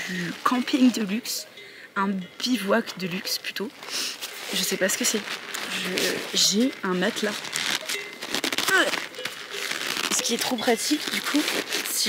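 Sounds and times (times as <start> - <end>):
stuff sack rustling and crinkling: 0.0 - 1.4, 3.1 - 12.0.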